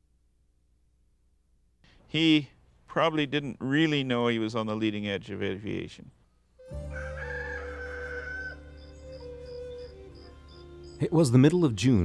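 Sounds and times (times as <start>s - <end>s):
rooster crowing: 6.6s - 11.0s.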